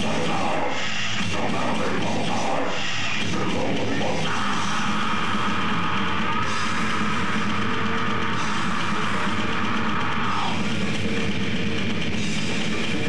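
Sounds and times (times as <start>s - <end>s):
vocalist growling: 0.0s - 7.7s
death metal band playing live: 0.0s - 13.0s.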